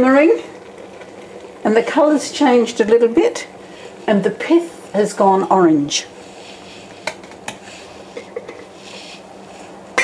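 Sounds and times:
pan simmering hiss: 0:00.0 - 0:10.0.

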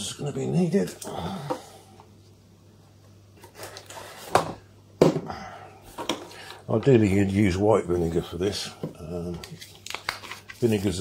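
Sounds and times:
faint steady hum: 0:00.0 - 0:11.0
objects knocking on hard worktop: 0:04.3 - 0:05.3.

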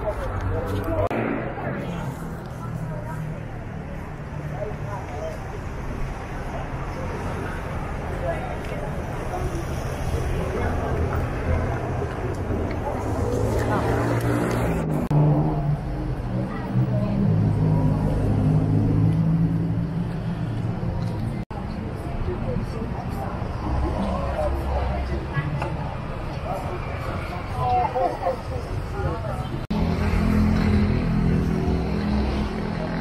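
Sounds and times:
street noise: 0:00.0 - 0:33.0
vehicles passing: 0:00.0 - 0:33.0.

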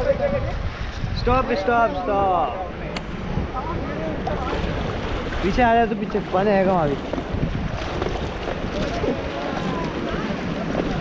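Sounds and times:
wind buffeting microphone: 0:00.0 - 0:11.0
river water rushing: 0:01.6 - 0:11.0
faint voices: 0:08.6 - 0:11.0.

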